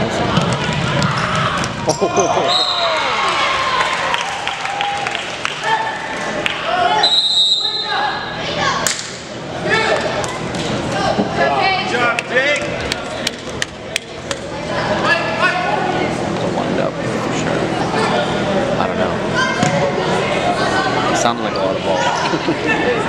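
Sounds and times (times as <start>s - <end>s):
players and spectators shouting: 0.0s - 8.9s
referee's whistle: 2.4s - 2.9s, 7.0s - 8.0s.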